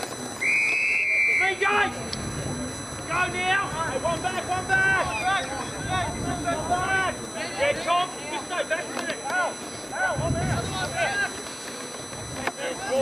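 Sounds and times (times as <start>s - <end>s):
distant voices shouting: 0.3s - 13.0s.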